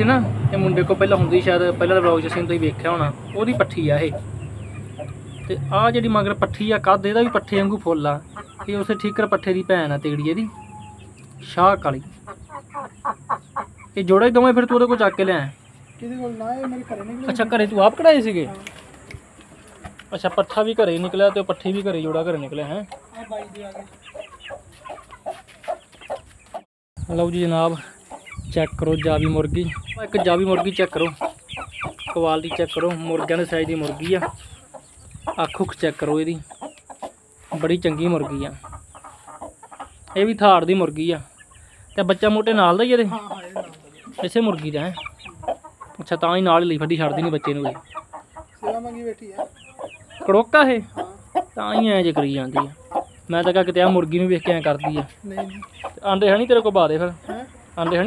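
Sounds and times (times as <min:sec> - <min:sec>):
hen clucking: 0:00.0 - 0:58.0.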